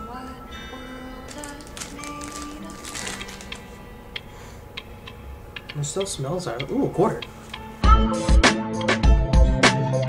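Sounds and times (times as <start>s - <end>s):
background music with held notes: 0.0s - 10.0s
plastic wrapper crinkling: 1.2s - 3.8s.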